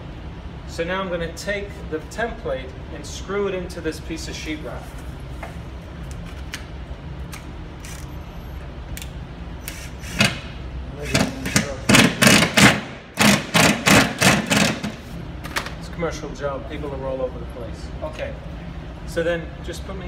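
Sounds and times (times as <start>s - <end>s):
drill driving screw in pulses: 7.8s - 8.5s, 9.6s - 14.8s.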